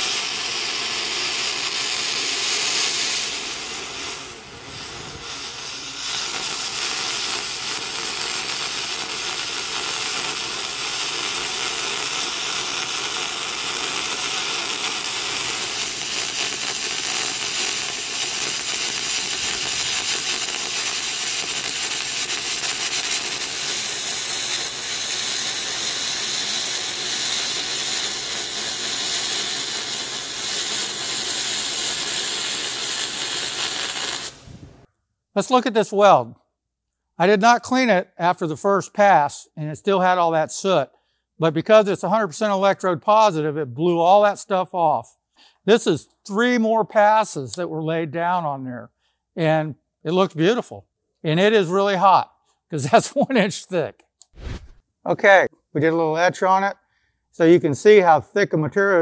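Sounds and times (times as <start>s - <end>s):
welding arc hiss and crackle: 0.0s - 34.9s, 54.2s - 54.8s.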